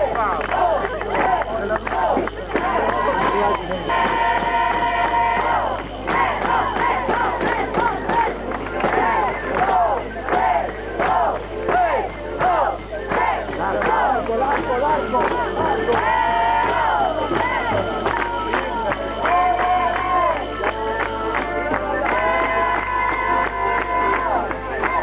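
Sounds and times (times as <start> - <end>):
steady low hum: 0.0 - 24.8
crowd voices: 0.0 - 25.0
music or singing: 0.0 - 25.0.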